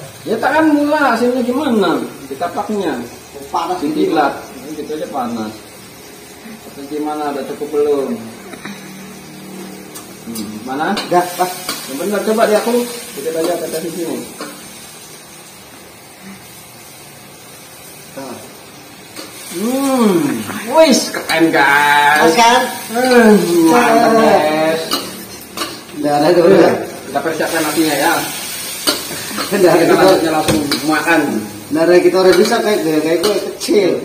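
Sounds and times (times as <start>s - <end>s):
vegetables sizzling in a wok: 0.0s - 34.0s
man making wordless vocal sounds: 19.6s - 20.9s.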